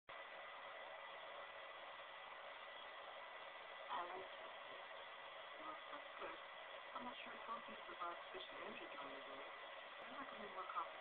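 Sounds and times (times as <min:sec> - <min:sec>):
steady hiss: 0:00.1 - 0:11.0
thin high whine: 0:00.1 - 0:11.0.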